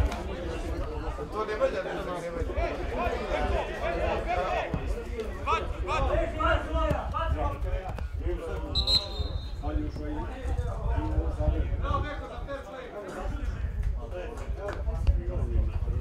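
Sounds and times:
people talking and calling: 0:00.0 - 0:16.0
referee's whistle blast: 0:08.7 - 0:09.6.

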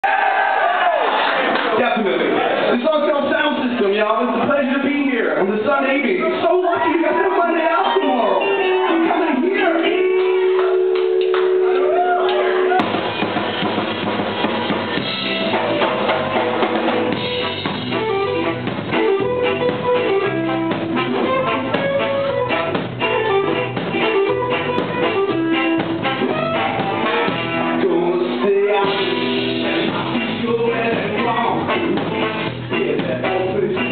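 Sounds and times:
ska band playing: 0:01.8 - 0:33.9
drum-kit beat: 0:08.5 - 0:33.9
trombone: 0:17.2 - 0:28.0.

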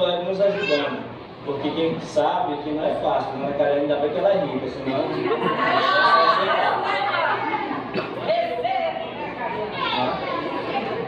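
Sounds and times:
several voices talking: 0:00.0 - 0:11.0.

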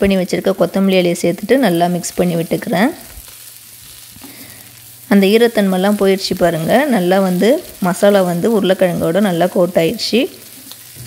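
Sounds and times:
food sizzling in a pan: 0:00.0 - 0:11.0.

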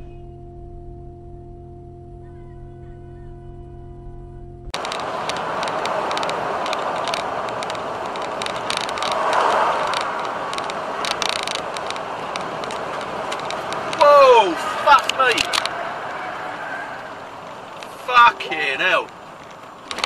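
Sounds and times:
held musical tone: 0:00.0 - 0:06.6
vehicle and road noise: 0:00.0 - 0:20.0
scattered clicks: 0:04.7 - 0:14.1, 0:14.9 - 0:16.2, 0:17.0 - 0:20.0.

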